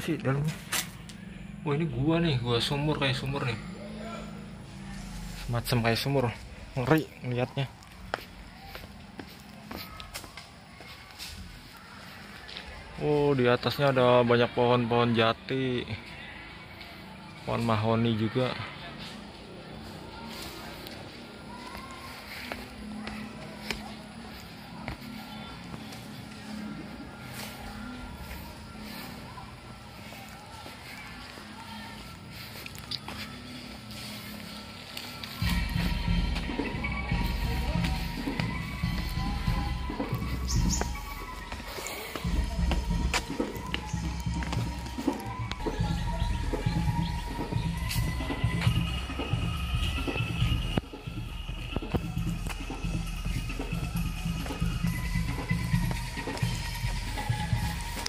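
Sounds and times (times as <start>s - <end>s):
distant bamboo rattle music: 0.0s - 58.0s.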